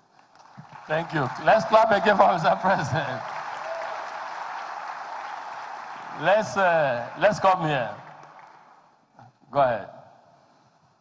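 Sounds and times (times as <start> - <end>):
crowd clapping: 0.0 - 9.0.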